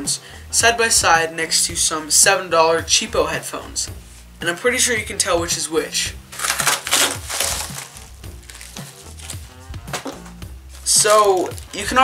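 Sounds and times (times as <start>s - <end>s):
background music: 0.0s - 12.0s
plastic mailer tearing open: 6.2s - 9.4s, 10.8s - 11.8s
plastic rustling: 6.2s - 12.0s.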